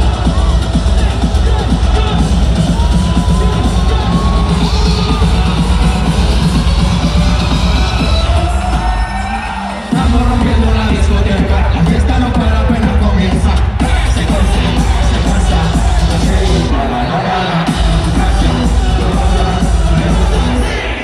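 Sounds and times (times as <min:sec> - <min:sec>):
crowd cheering: 0:00.0 - 0:21.0
loud live music with heavy bass: 0:00.0 - 0:21.0.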